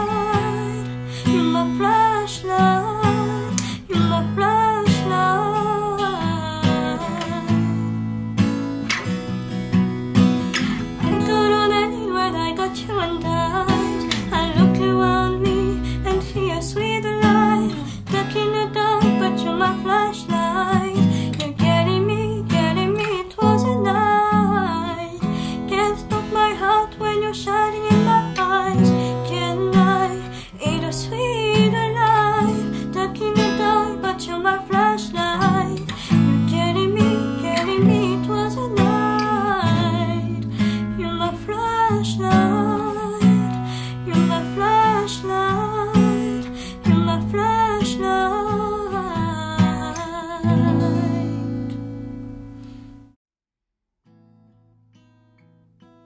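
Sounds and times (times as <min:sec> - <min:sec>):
woman singing a pop ballad: 0:00.0 - 0:08.0, 0:10.6 - 0:51.9
acoustic guitar strummed and picked: 0:00.0 - 0:53.2, 0:54.0 - 0:56.0.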